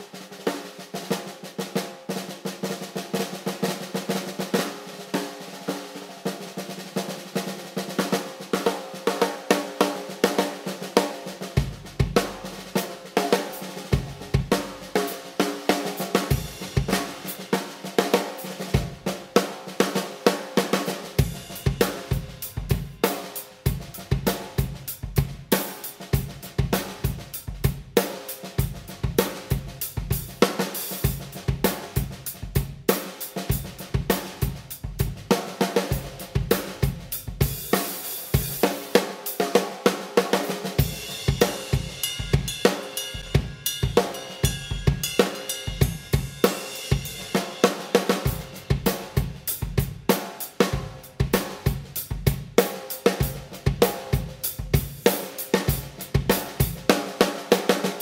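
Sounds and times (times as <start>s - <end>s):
snare drum rolls and strokes: 0.0s - 58.0s
cymbal strokes: 40.8s - 47.7s.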